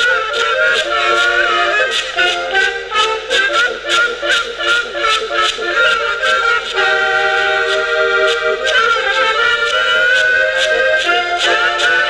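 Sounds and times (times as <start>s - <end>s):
accordion: 0.0s - 12.0s
brass horns: 0.0s - 12.0s
regular percussive beat: 0.0s - 12.0s.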